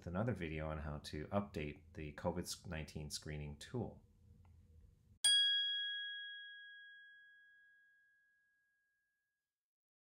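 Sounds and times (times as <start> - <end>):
bell ding: 5.2 - 8.9.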